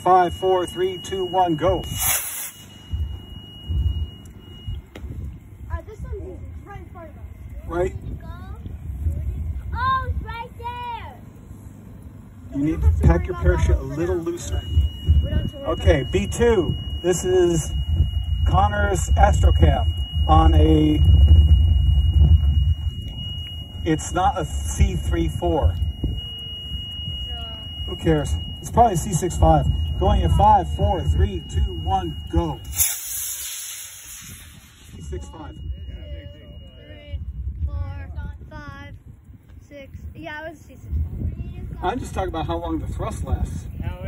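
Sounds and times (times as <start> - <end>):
high electronic tone: 0.0 - 38.6
rocket hissing whoosh: 1.8 - 2.9, 32.6 - 35.3
low rumbling on microphone: 2.7 - 44.0.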